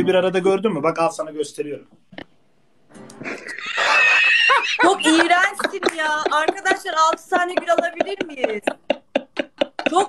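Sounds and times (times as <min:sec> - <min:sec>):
loud high-pitched laughter: 0:03.3 - 0:05.4.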